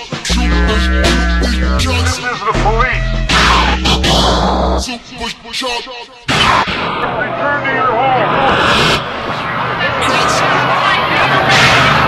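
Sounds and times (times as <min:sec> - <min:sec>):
electronic music backing: 0:00.0 - 0:05.1
steady bass line: 0:00.2 - 0:04.9
pitch-bending voice sample: 0:00.3 - 0:04.8.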